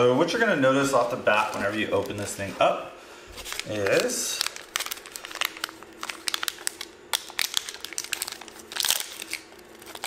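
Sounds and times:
plastic packaging crinkling: 0:00.8 - 0:02.6, 0:03.3 - 0:10.0.

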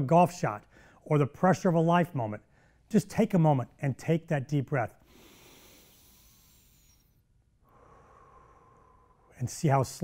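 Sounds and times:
faint deep breath: 0:00.6 - 0:01.0, 0:05.0 - 0:09.4.

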